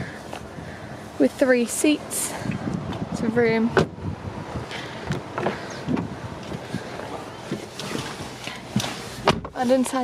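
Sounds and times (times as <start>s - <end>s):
wind buffeting microphone: 0.0s - 9.6s
car door clicks and knocks: 8.8s - 9.6s.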